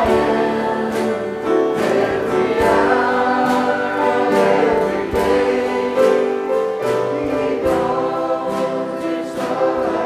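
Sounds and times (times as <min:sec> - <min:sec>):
congregation singing a hymn: 0:00.0 - 0:10.0
instrumental accompaniment with beat: 0:00.0 - 0:10.0.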